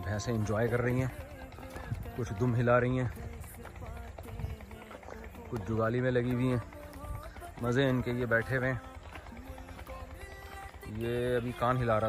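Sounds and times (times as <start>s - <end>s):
footsteps on dry soil: 0.0s - 12.0s.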